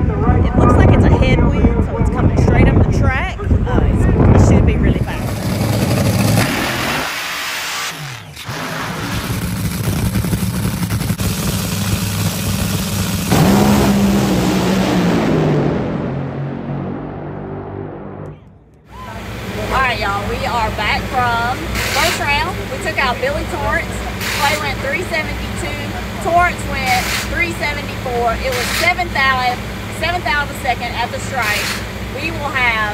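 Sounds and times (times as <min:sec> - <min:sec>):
dragster engines at full throttle: 0:00.0 - 0:32.9.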